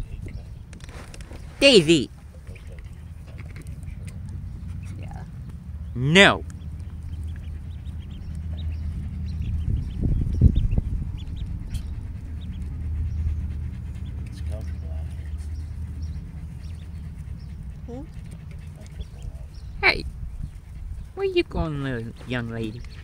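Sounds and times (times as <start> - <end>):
wind rumble on microphone: 0.0 - 1.6, 6.6 - 14.2, 15.9 - 23.0
ducklings peeping: 5.9 - 23.0.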